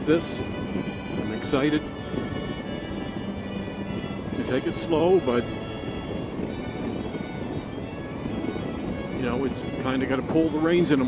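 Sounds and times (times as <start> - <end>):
background music with held tones: 0.0 - 11.0
wind noise: 0.0 - 11.0.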